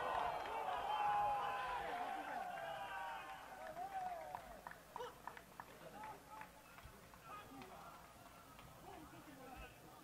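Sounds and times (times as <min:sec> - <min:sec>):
players shouting and calling: 0:00.0 - 0:09.8.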